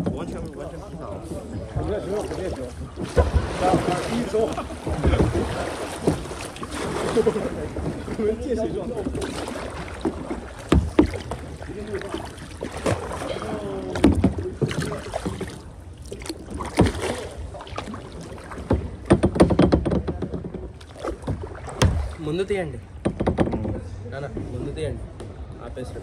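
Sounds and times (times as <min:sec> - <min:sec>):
paddles splashing in water: 0:00.0 - 0:25.5
sharp knocks: 0:10.0 - 0:11.5, 0:16.6 - 0:17.2, 0:18.6 - 0:22.2, 0:23.0 - 0:23.8.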